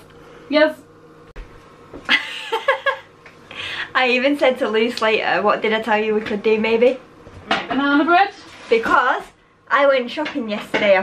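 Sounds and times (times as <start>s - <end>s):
woman laughing high-pitched: 2.1s - 3.1s.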